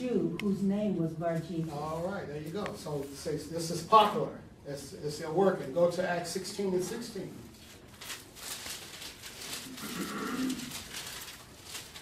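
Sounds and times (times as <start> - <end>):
book pages rustling: 7.5 - 12.0.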